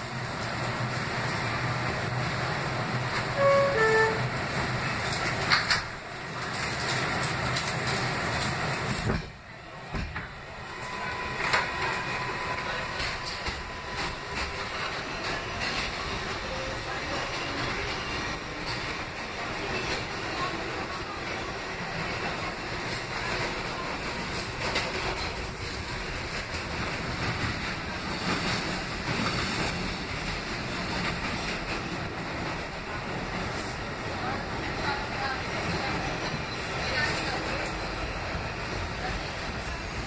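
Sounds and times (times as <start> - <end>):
subway car running noise: 0.0 - 40.0.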